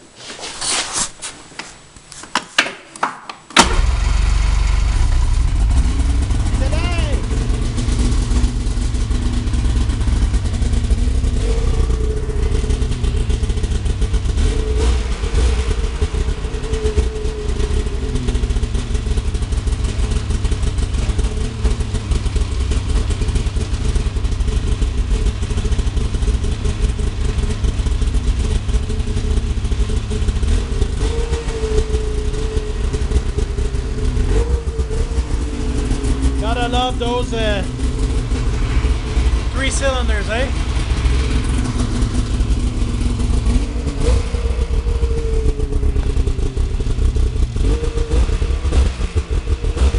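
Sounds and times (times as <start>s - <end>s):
snowmobile engine idling: 3.6s - 49.9s.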